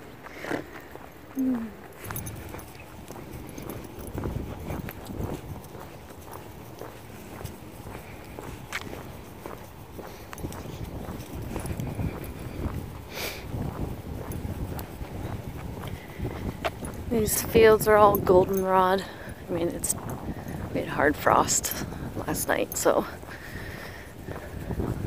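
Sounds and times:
footsteps on asphalt: 0.0s - 25.0s.

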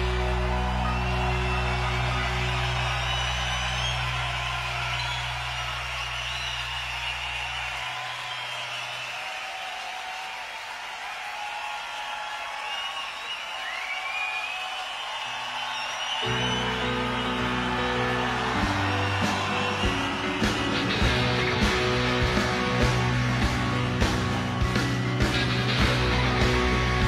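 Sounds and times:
crowd cheering and whistling: 0.0s - 27.0s
rock band chord with deep bass: 18.8s - 27.0s.

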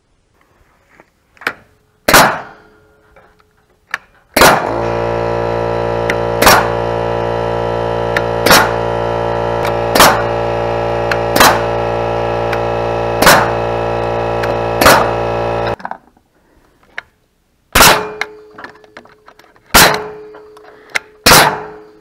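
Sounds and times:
nail gun firing: 2.1s - 2.6s, 4.3s - 5.0s, 6.1s - 6.8s, 8.2s - 8.8s, 9.6s - 10.4s, 11.1s - 11.8s, 13.2s - 13.7s, 14.4s - 15.8s, 17.8s - 18.3s, 19.7s - 20.3s, 21.2s - 21.8s
steady drone: 4.4s - 15.8s.

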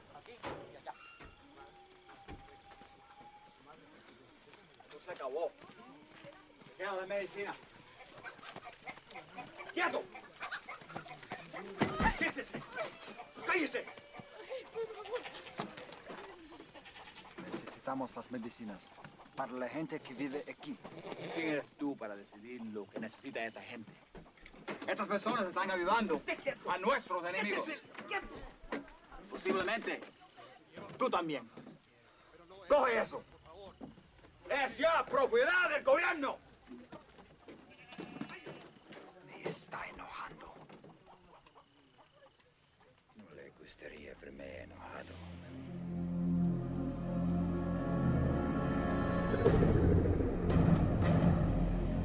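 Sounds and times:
goat bleating: 12.8s - 15.8s, 16.5s - 17.6s, 20.8s - 21.7s, 37.6s - 38.6s
small chirps and ticks: 21.8s - 25.6s, 36.4s - 43.8s.

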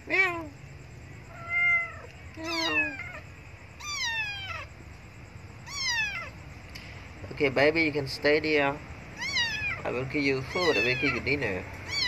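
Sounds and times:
kitten meowing: 1.3s - 4.7s, 5.6s - 6.4s, 9.2s - 12.0s.

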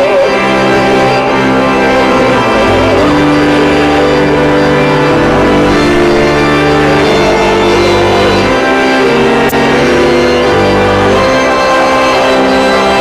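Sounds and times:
church organ playing hymn: 0.0s - 13.0s
people singing: 5.2s - 13.0s.

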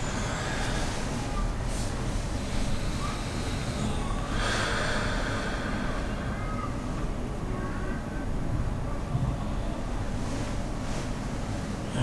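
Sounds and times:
person breathing through nose: 3.7s - 6.3s.

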